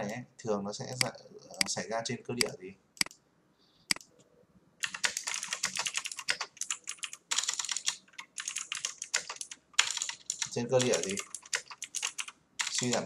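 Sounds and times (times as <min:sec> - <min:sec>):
typing on computer keyboard: 0:04.8 - 0:13.0.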